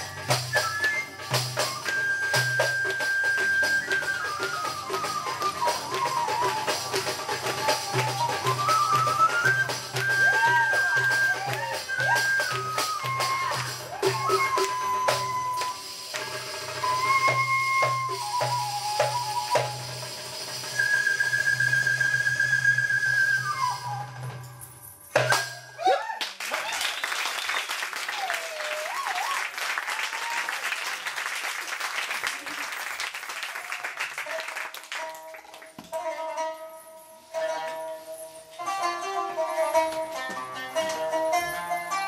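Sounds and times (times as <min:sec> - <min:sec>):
live ensemble music: 0:00.0 - 0:25.8.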